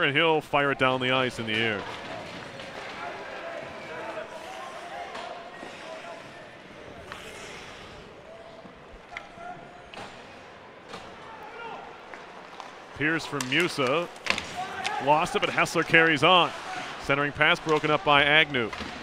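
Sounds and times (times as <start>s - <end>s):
faint indistinct crowd voices: 0.6s - 19.0s
skates scraping ice: 1.4s - 8.6s
stick and puck clacks: 12.0s - 15.9s, 17.5s - 19.0s.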